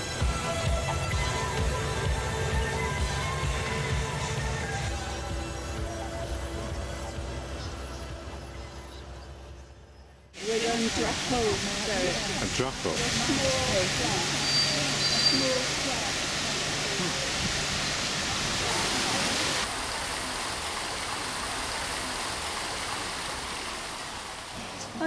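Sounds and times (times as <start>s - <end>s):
fountain water splashing: 10.4s - 25.0s.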